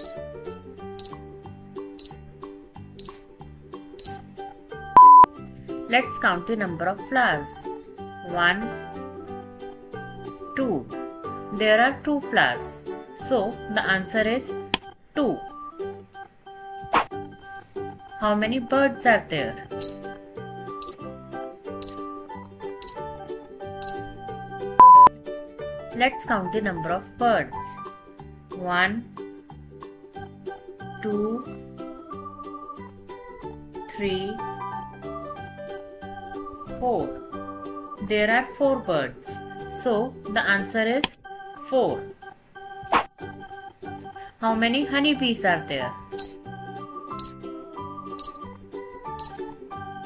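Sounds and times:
light background music: 0.0 - 50.0
background music with steady beat: 3.0 - 3.2, 4.0 - 4.2, 23.8 - 24.1, 48.2 - 48.4, 49.2 - 49.4
long single beep: 3.0 - 3.2, 4.0 - 4.2, 5.0 - 5.3, 24.8 - 25.1, 49.2 - 49.4
short high timer ticks: 3.0 - 3.2, 4.0 - 4.2, 49.2 - 49.4.

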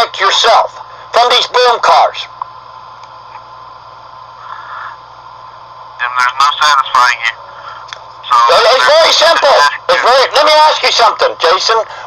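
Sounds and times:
recording hiss and hum: 0.0 - 12.0.

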